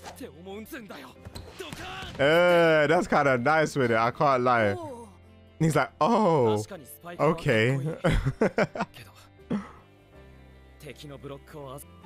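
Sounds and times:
background music: 0.0s - 12.0s
character speaking: 5.6s - 7.9s.

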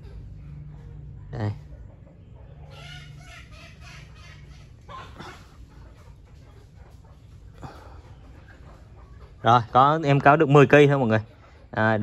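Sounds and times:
low steady hum: 0.0s - 9.0s
chicken clucking: 0.0s - 12.0s.

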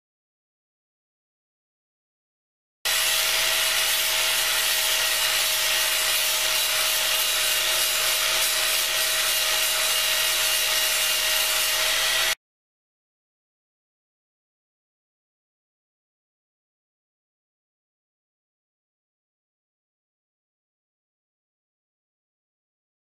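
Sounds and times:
angle grinder grinding horn: 2.9s - 12.4s.

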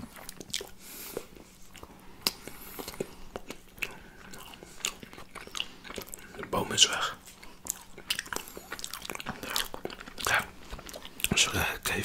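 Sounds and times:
crunchy chewing: 0.0s - 11.6s.

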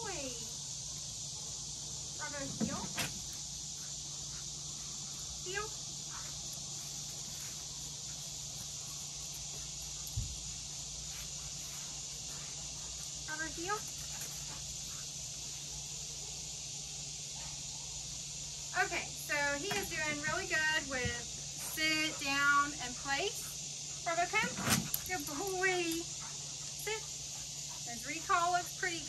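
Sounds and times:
crickets chirping: 0.0s - 29.0s
insect chorus: 0.0s - 29.0s.

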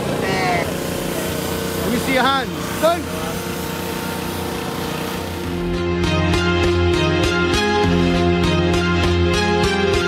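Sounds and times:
small petrol engine running: 0.0s - 5.8s.

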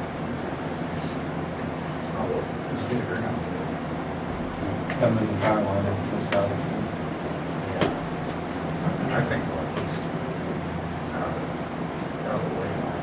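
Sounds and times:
room noise hum: 0.0s - 13.0s
indistinct low talk: 1.9s - 13.0s.

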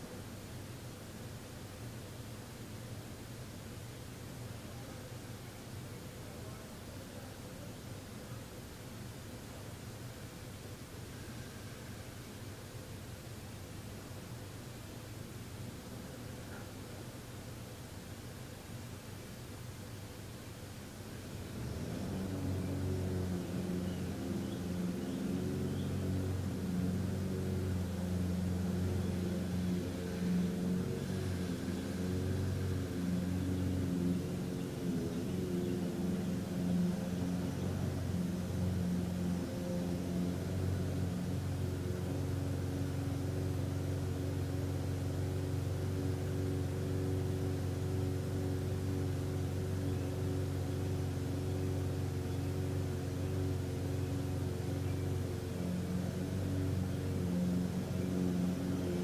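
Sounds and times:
low droning hum: 21.4s - 59.0s.

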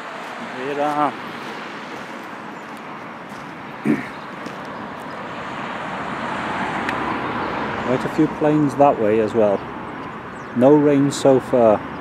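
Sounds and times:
road traffic rushing: 0.0s - 12.0s.

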